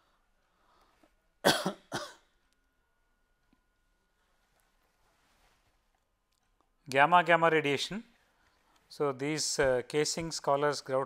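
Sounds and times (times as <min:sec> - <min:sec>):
person coughing: 0:01.4 - 0:02.3.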